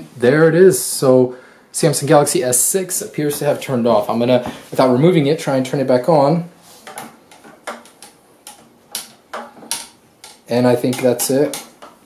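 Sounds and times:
metal clamp clicking and tapping: 0:07.0 - 0:12.0.

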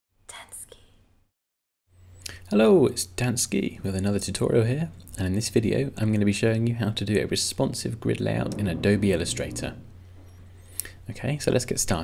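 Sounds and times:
microphone hum: 0:08.1 - 0:10.6.

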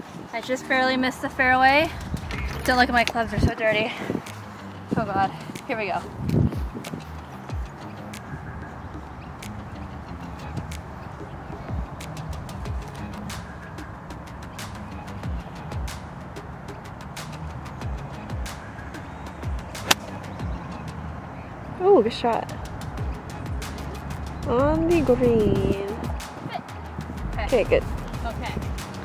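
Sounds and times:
light background music: 0:00.1 - 0:29.0
golf club striking ball: 0:19.8 - 0:20.1.

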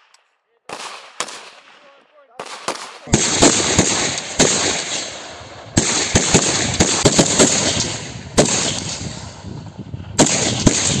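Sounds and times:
rifle shots: 0:00.7 - 0:09.3, 0:10.2 - 0:11.0.

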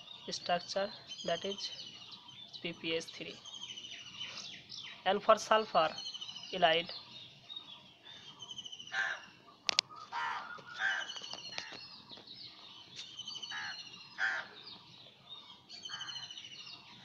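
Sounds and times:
birds chirping trills: 0:00.0 - 0:17.0
harsh lower bird calls: 0:00.0 - 0:17.0.

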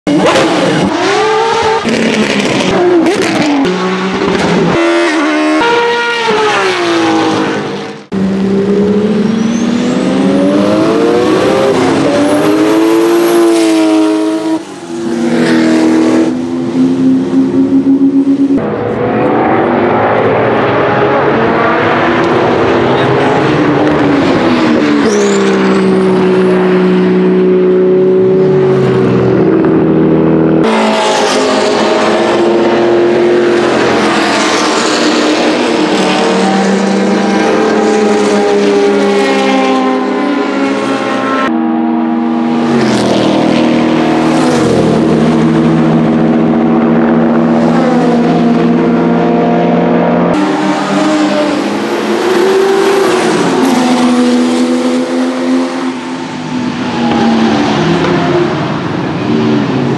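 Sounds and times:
race car engine: 0:00.0 - 0:59.9
another race car engine: 0:00.1 - 0:59.9.

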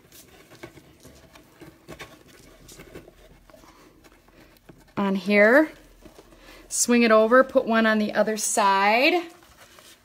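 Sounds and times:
hands rustling twine: 0:00.0 - 0:07.6.

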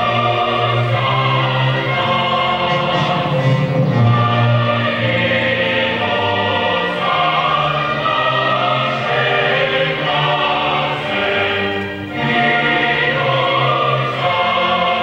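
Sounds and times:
choir singing long notes: 0:00.0 - 0:15.0.

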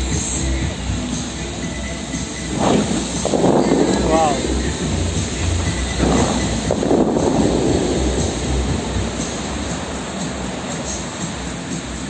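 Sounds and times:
fountain water jets splashing: 0:00.0 - 0:12.0
whoosh of jets shooting up: 0:02.1 - 0:10.4.

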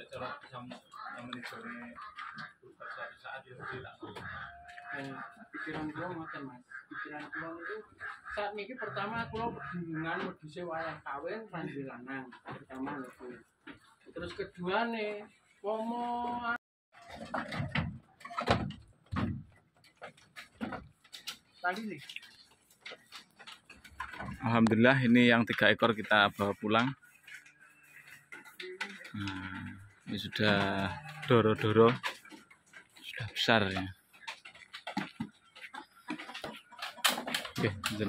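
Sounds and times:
hooves clattering on bamboo: 0:00.0 - 0:16.2, 0:17.0 - 0:38.0.

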